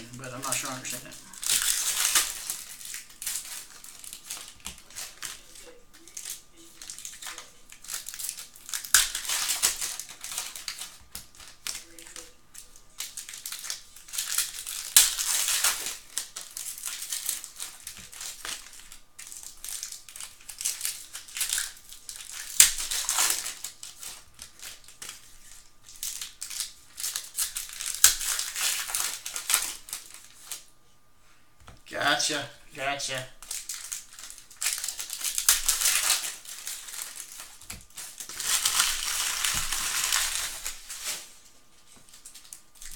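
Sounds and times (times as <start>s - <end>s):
foil wrappers crinkling: 0.0s - 30.7s, 32.8s - 42.9s.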